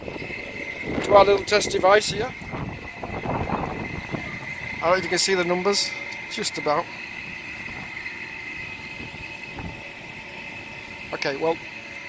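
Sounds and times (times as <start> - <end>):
low steady tones: 0.0 - 12.0
steady high-pitched whine: 0.0 - 12.0.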